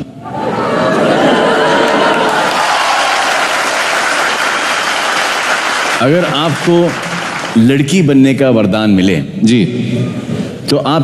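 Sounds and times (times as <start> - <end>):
audience applauding: 1.0 - 8.0.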